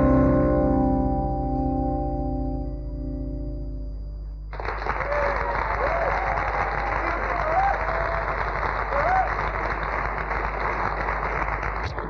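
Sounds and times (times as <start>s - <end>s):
muffled audience applauding: 4.5s - 12.0s
shouts and whoops: 4.9s - 9.6s.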